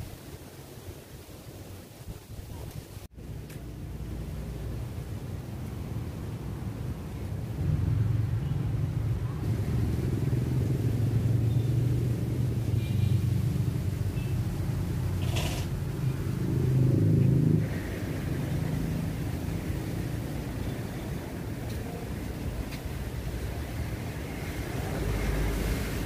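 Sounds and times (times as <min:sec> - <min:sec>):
motor vehicle rumble: 0:03.0 - 0:26.0.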